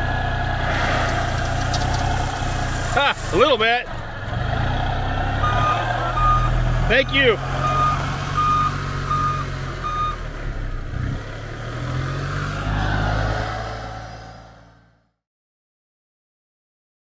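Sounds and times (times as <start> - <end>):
tractor diesel engine running: 0.0 - 10.8
reverse alarm beeping: 5.4 - 6.6, 7.6 - 10.2.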